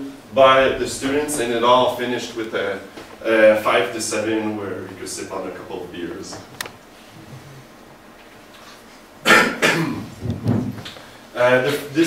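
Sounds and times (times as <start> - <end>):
person coughing: 9.2 - 10.1.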